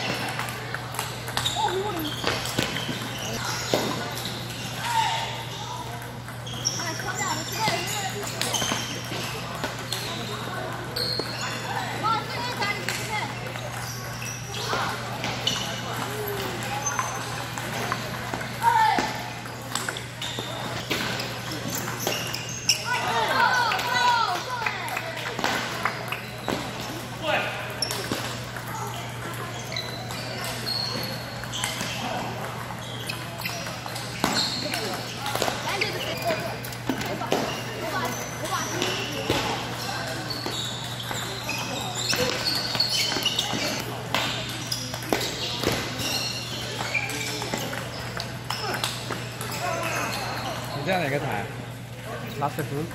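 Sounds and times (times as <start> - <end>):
table tennis balls clicking off paddles: 0.0 - 4.3, 12.4 - 27.0
balls bouncing on tables: 0.0 - 51.0
hubbub of voices: 0.0 - 52.9.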